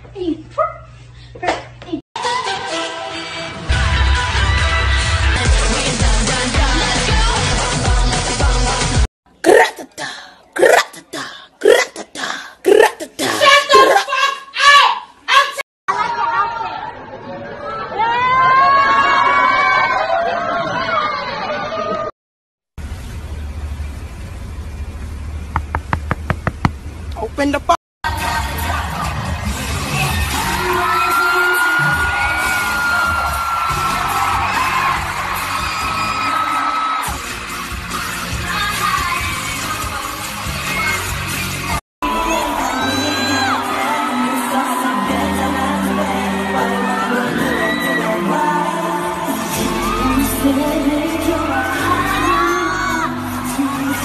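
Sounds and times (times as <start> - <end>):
pop music: 2.2 - 9.1, 28.1 - 54.0
crowd screaming: 15.9 - 22.1, 28.1 - 39.2, 42.0 - 54.0.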